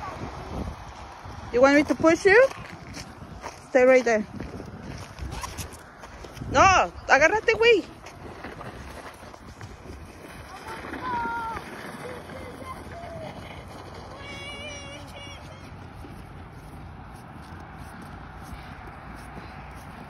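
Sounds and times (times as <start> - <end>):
low outdoor rumble: 0.0 - 20.0
faint voices shouting: 10.5 - 16.2.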